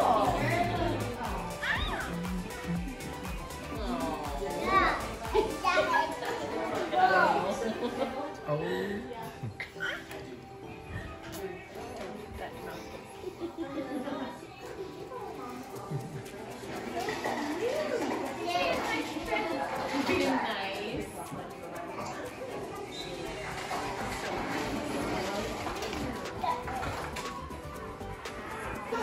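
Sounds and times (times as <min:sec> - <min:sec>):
young children babbling and calling: 0:00.0 - 0:07.4
background music: 0:00.0 - 0:29.0.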